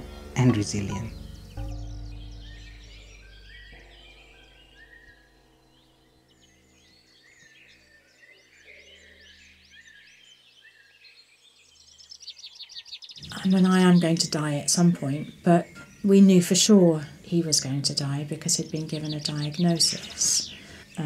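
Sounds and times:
low musical drone: 0.0 - 10.9
small birds chirping: 0.0 - 21.0.

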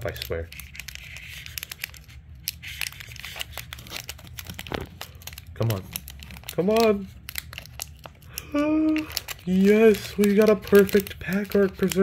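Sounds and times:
foil wrapper crinkling and tearing: 0.0 - 12.0.

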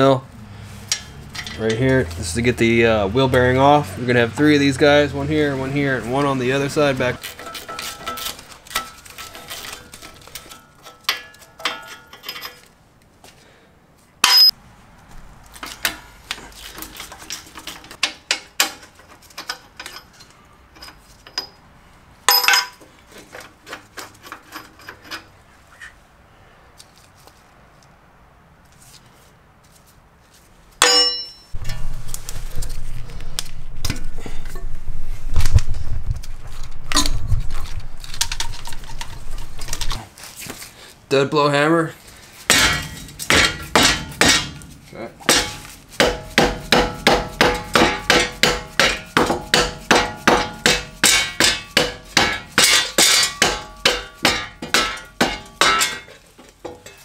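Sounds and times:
metal tools clinking: 0.8 - 2.1, 7.2 - 12.7, 14.2 - 14.5, 16.7 - 21.6, 22.3 - 25.4, 30.8 - 31.9, 50.1 - 57.0
metal clangs: 0.9 - 2.0, 7.2 - 12.7, 14.2 - 14.6, 22.3 - 22.8, 30.8 - 32.1, 42.5 - 57.0.

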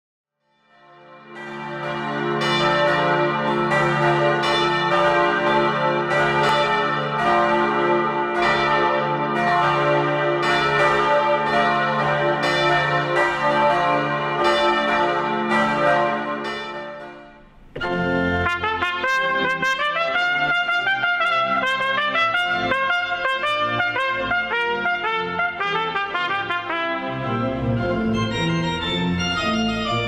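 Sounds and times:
church bells pealing: 0.8 - 25.6, 26.2 - 30.0.

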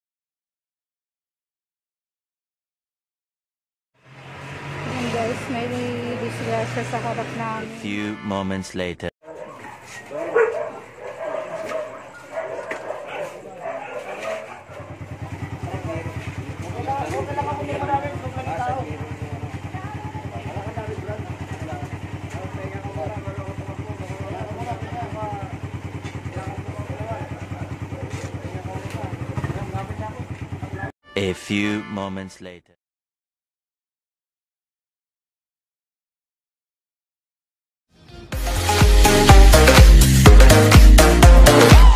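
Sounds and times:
motorcycle engine idling: 13.6 - 30.9.

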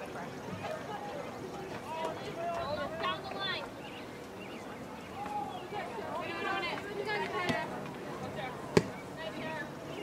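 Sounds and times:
distant voices calling: 0.0 - 10.0.

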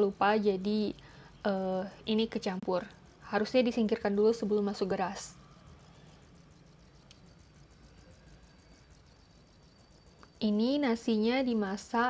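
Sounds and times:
low hum: 1.3 - 10.8.

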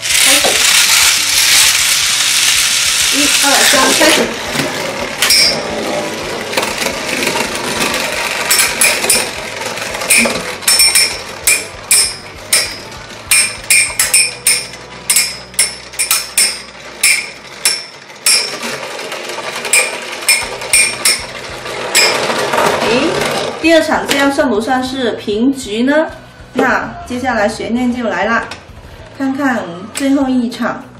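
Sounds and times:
spinning tops whirring hiss: 0.0 - 23.0
metallic clacks of colliding tops: 3.1 - 23.5.

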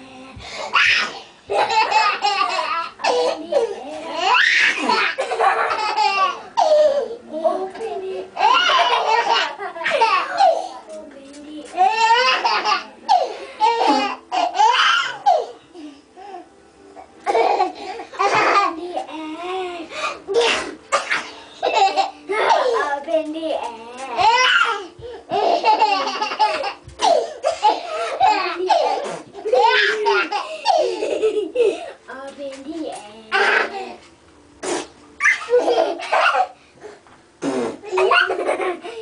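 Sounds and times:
baby laughing: 0.7 - 7.2, 8.4 - 10.7, 11.8 - 15.6, 24.2 - 31.9, 35.2 - 36.6, 37.8 - 39.0.

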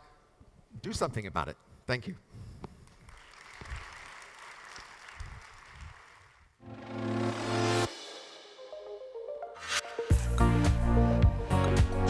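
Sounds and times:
audience applauding: 3.0 - 6.5.

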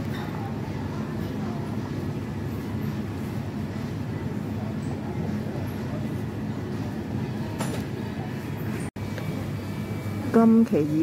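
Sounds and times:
supermarket background rumble: 0.0 - 11.0.

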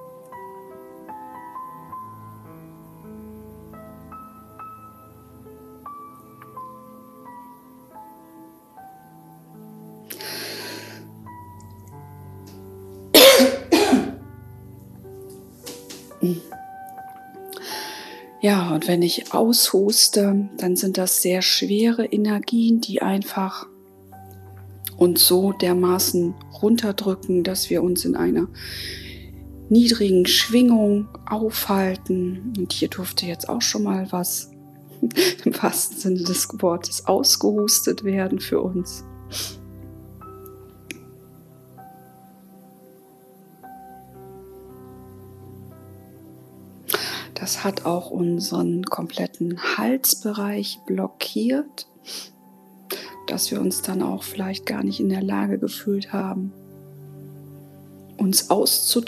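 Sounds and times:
quiet background music: 0.0 - 59.0
woman coughing: 13.2 - 14.2.

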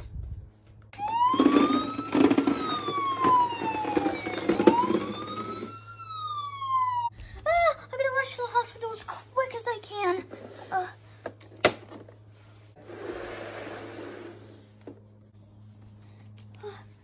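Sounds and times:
toy siren wailing: 1.0 - 7.1
rough noise: 12.8 - 14.6.

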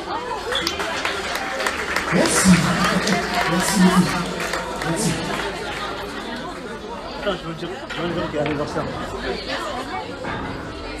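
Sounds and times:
people talking at tables: 0.0 - 11.0.

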